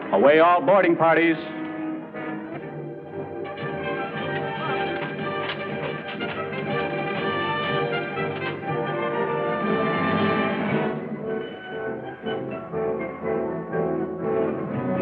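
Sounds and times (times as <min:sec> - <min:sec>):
orchestral music sustained chords: 0:01.1 - 0:15.0.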